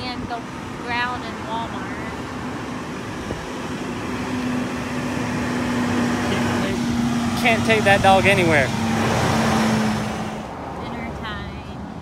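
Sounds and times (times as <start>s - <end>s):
low engine hum: 0.0s - 12.0s
road traffic: 0.0s - 12.0s.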